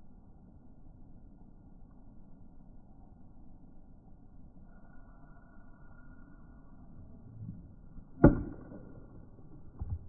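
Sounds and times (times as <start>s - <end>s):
baseball bat hitting ball: 8.2s - 9.2s.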